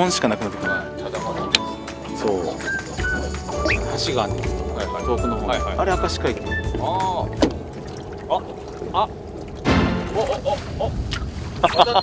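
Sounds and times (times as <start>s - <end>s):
wind and water: 0.6s - 12.0s
boat engine hum: 1.8s - 11.0s.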